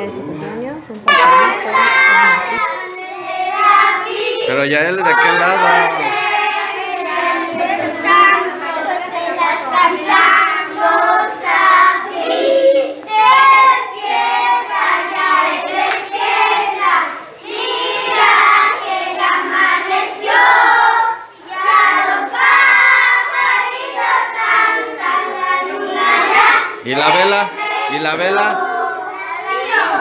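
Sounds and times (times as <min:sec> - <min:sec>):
children singing together: 0:01.1 - 0:30.0.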